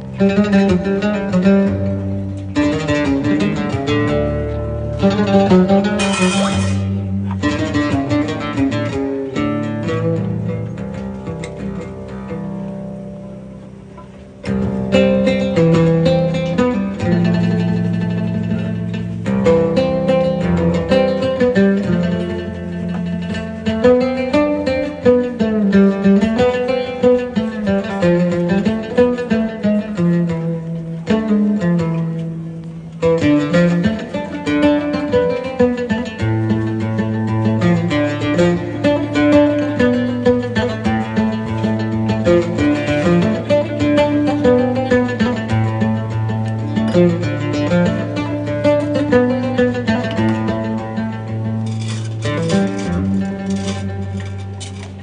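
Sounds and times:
plucked oud melody: 0.0 - 55.0
double bass low notes: 1.2 - 20.7.

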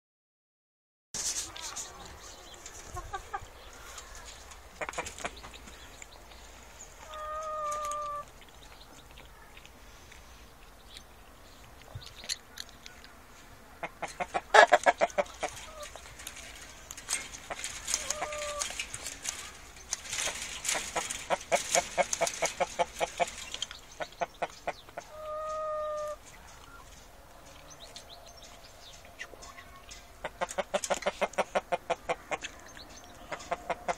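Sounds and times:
chickens clucking: 1.2 - 33.9
chicken held call: 25.1 - 26.2.

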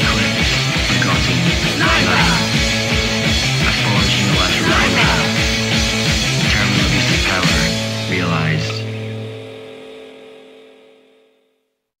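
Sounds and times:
punk band final chord ringing: 0.0 - 11.1
vocal cry: 1.2 - 2.8, 4.1 - 5.6.

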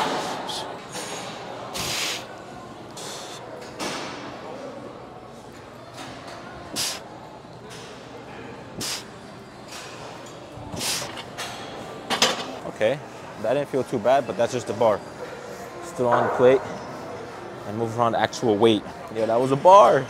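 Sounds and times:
gym background hum: 0.0 - 20.0.

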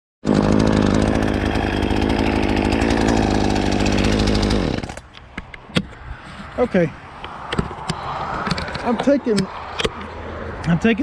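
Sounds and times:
chainsaw running: 0.2 - 5.1.

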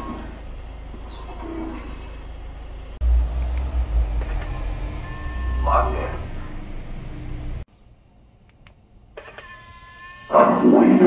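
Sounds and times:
cat-like tone from car speaker: 5.0 - 6.6
faint clicks: 8.4 - 8.8.

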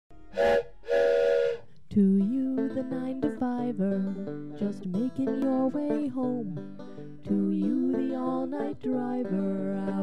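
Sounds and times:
train whistle blasts: 0.3 - 1.7.

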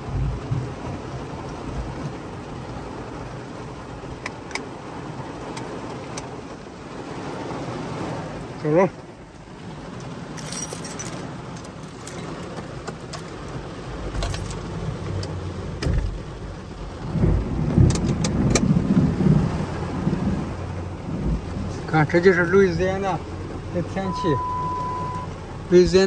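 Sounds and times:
low thunder rumble: 0.0 - 2.2, 15.4 - 23.8
heavy rain on car roof: 0.0 - 26.0.

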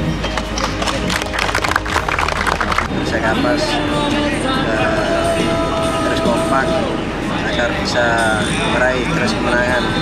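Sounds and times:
background music: 0.0 - 10.0
people clapping: 0.2 - 2.9.

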